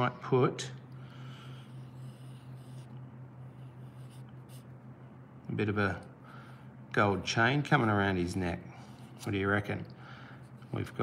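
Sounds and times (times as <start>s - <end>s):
steady low hum: 0.0s - 11.0s
pencil scratching on paper: 1.5s - 4.7s.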